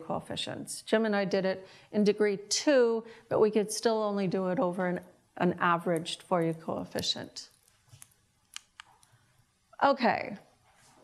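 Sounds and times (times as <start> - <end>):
woman speaking: 0.0 - 7.5, 9.8 - 10.4.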